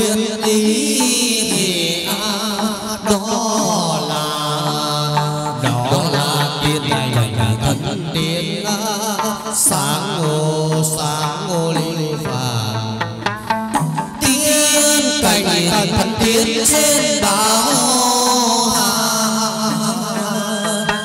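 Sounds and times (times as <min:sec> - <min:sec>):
person singing ornamented melody: 0:00.0 - 0:12.8, 0:14.2 - 0:21.0
instrumental accompaniment: 0:00.0 - 0:21.0
sharp percussion strikes: 0:00.0 - 0:21.0.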